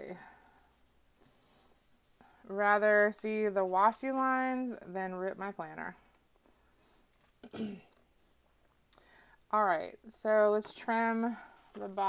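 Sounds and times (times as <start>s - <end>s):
hands rubbing paper page: 0.0s - 4.4s.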